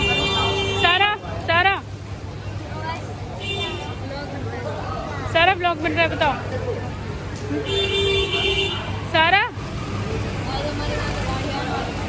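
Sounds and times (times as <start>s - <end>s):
low hum of traffic: 0.0s - 12.0s.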